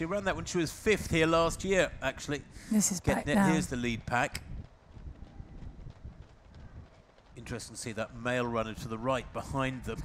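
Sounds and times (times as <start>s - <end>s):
runners' footsteps on asphalt: 3.6s - 10.0s.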